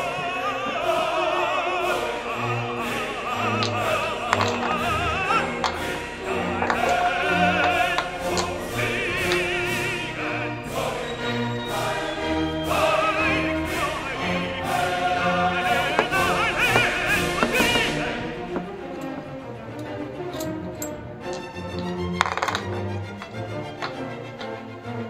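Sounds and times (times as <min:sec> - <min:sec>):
operatic singer with orchestra: 0:00.0 - 0:25.0.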